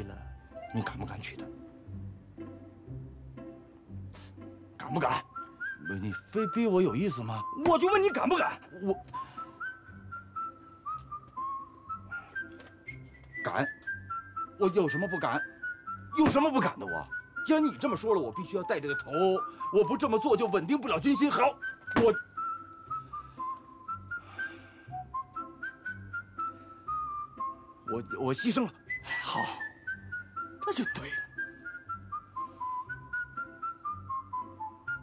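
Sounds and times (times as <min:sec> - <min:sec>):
whistled melody: 0:00.0 - 0:35.0.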